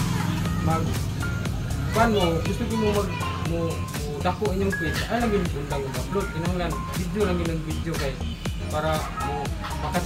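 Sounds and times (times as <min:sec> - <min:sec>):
background music: 0:00.0 - 0:10.0
voices talking: 0:00.0 - 0:10.0.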